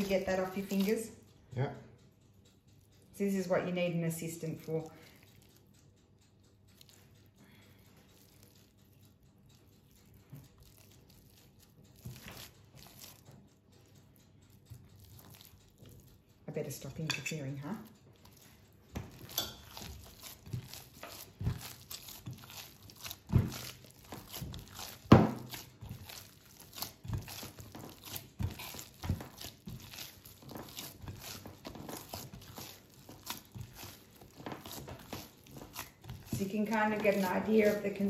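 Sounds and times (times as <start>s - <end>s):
hands kneading wet dough: 0.0s - 1.3s, 2.8s - 38.0s
dough thumping in bowl: 18.2s - 38.0s.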